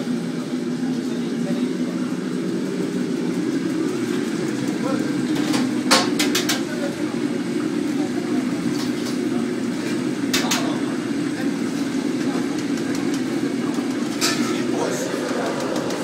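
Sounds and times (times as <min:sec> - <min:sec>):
low roar of kitchen: 0:00.0 - 0:16.0
metal pans clanking: 0:14.0 - 0:16.0.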